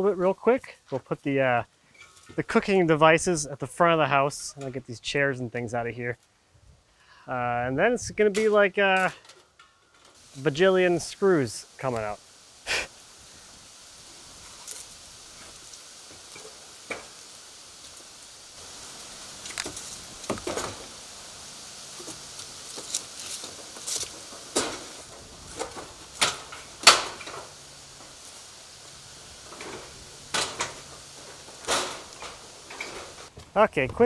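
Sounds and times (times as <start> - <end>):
grill wheeled over wooden boards: 0.0 - 5.2, 7.8 - 34.0.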